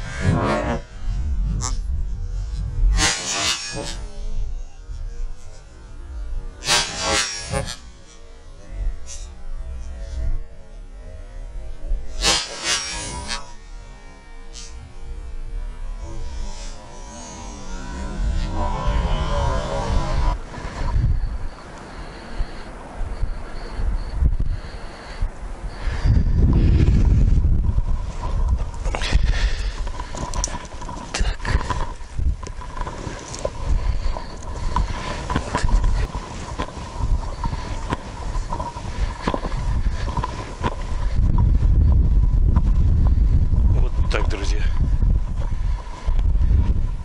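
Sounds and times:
wind buffeting microphone: 0.0s - 6.7s, 14.6s - 47.0s
footsteps crunching in snow: 27.0s - 41.6s.

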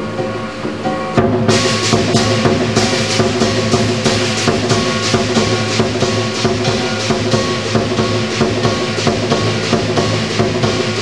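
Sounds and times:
big drum fast beat: 0.0s - 11.0s
cymbals clashing: 0.0s - 11.0s
gong ringing: 0.0s - 11.0s.

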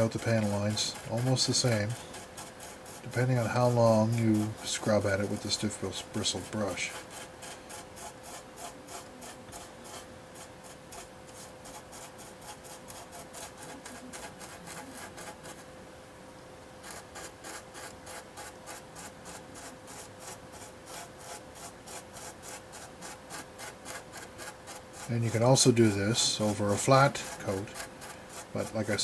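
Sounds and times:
brush scrubbing a surface: 0.0s - 15.7s, 16.8s - 29.0s
faint steady hum: 0.0s - 29.0s.

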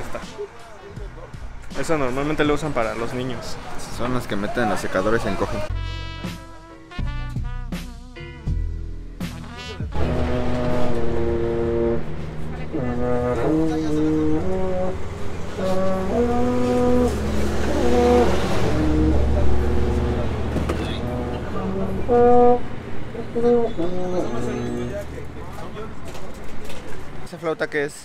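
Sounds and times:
baritone horn notes: 4.8s - 26.1s.

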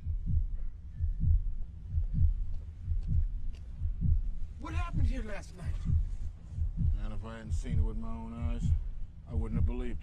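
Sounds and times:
deep bass pulses: 0.0s - 10.0s.

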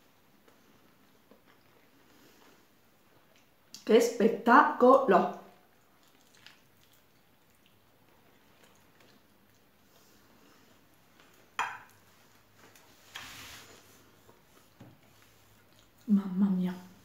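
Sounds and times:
person chewing pastry: 0.2s - 3.7s, 5.7s - 12.9s, 15.4s - 16.1s.

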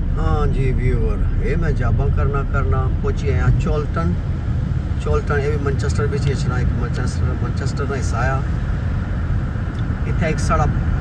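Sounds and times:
car engine: 0.0s - 11.0s.

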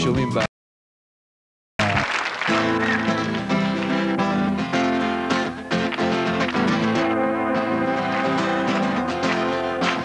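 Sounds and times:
acoustic guitar strumming: 2.5s - 10.0s.

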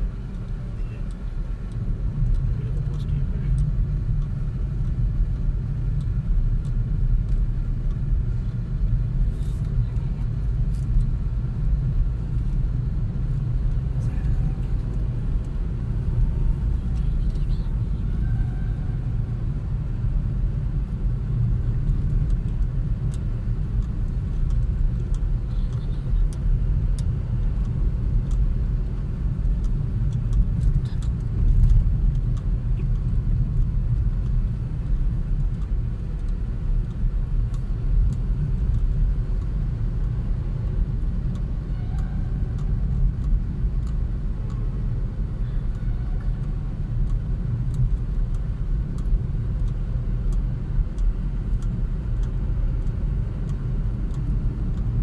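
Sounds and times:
car driving low rumble: 0.0s - 55.0s
tyre and road noise: 0.0s - 55.0s.

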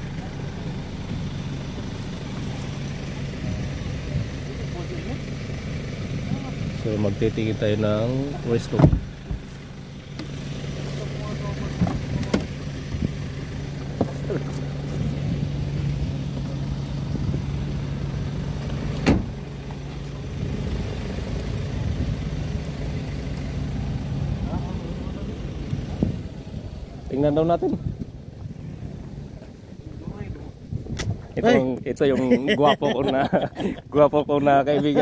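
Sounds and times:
engine idling: 0.0s - 35.0s.

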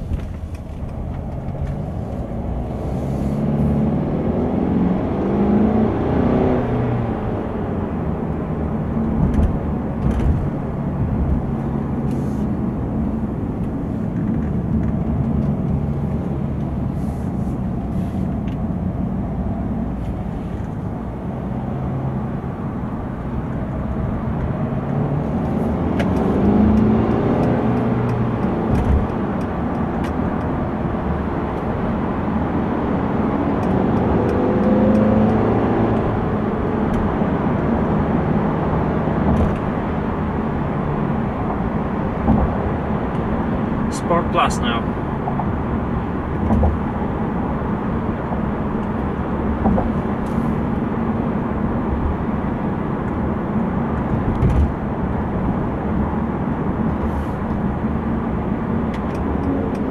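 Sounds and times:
diesel engine from inside car: 0.0s - 59.9s
road and tyre noise: 0.0s - 59.9s.

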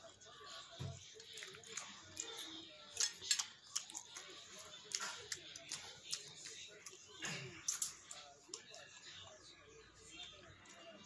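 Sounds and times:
person chewing food: 0.4s - 9.4s.

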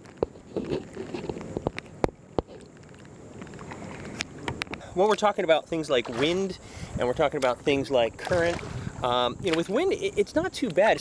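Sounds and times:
water lapping along kayak hull: 0.0s - 11.0s.

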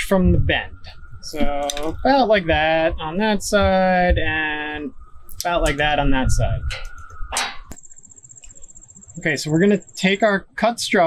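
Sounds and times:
pulsing insect trill: 0.0s - 11.0s.

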